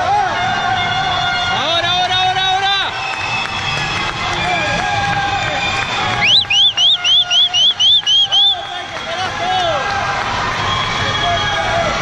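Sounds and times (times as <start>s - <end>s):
crowd shouting and cheering: 0.0s - 12.0s
shrill whistle chirps: 5.4s - 8.9s.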